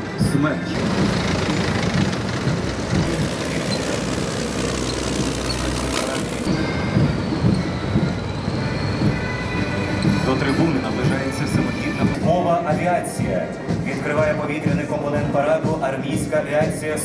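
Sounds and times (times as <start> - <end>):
diesel engines of heavy vehicles: 0.0 - 17.0.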